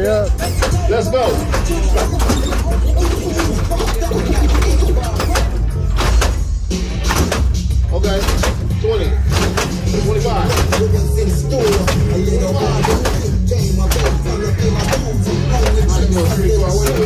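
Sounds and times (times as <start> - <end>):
music with heavy bass line: 0.0 - 17.0.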